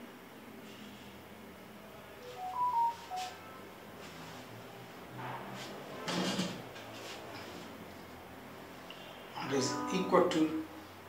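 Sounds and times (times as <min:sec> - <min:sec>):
electronic notification chime: 0:02.2 - 0:03.4.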